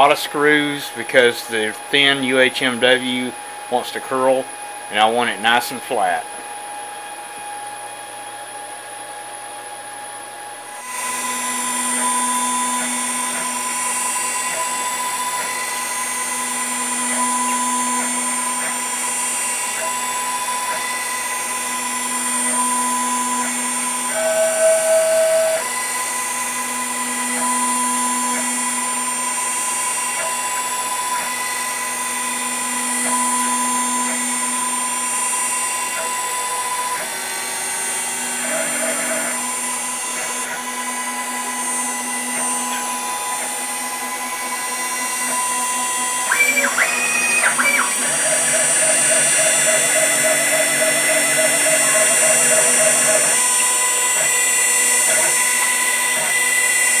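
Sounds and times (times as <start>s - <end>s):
cnc router cutting plastic: 0.0s - 57.0s.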